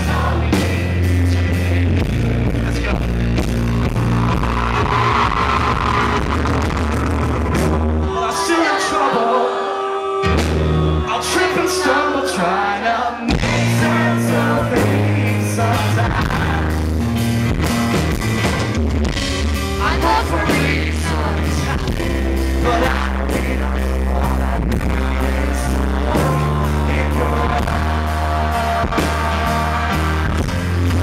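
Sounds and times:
held bass notes: 0:00.0 - 0:08.3, 0:10.2 - 0:31.0
guitar chords: 0:00.0 - 0:31.0
live pop-rock band playing: 0:00.0 - 0:31.0
drum beat: 0:13.3 - 0:15.3.

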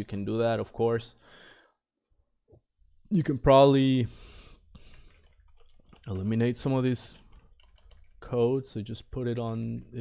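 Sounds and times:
man inhaling softly: 0:01.2 - 0:01.8, 0:04.1 - 0:05.3.

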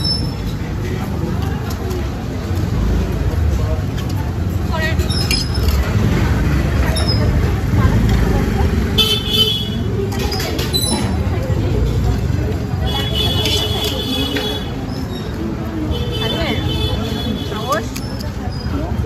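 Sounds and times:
indistinct crowd voices: 0:00.0 - 0:19.0
traffic rumble: 0:00.0 - 0:19.0.

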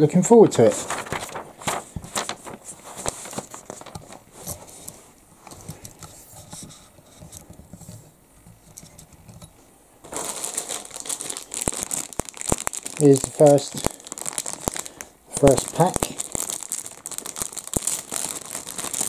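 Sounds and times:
plastic bag crinkling: 0:00.5 - 0:04.8, 0:10.0 - 0:19.0.

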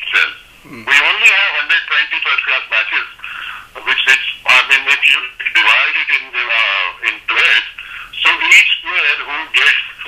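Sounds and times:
person talking over telephone: 0:00.0 - 0:10.0.

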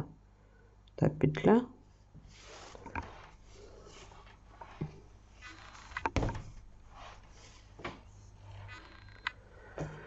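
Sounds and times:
sweater rustling: 0:02.1 - 0:08.9.

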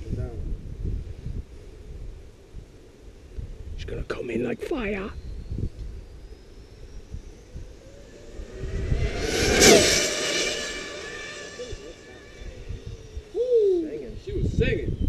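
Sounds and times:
rc car electric motor whine: 0:05.3 - 0:13.4
whoosh of car passing: 0:07.0 - 0:13.3.

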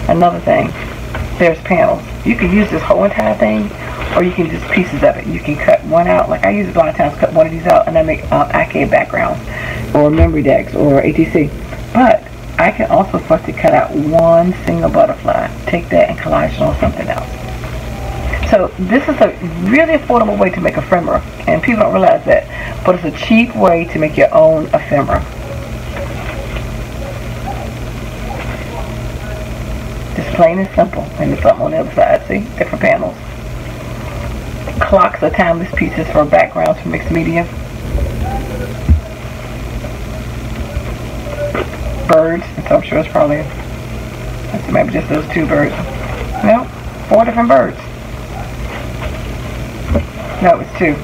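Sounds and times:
steady low hum: 0:00.0 - 0:51.0.

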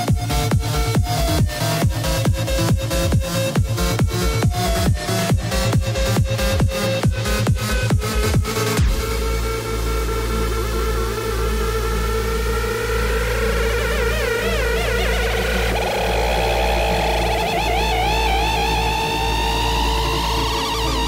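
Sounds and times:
pulsing bass: 0:00.0 - 0:21.0
wavering synthesizer lines: 0:00.0 - 0:21.0.

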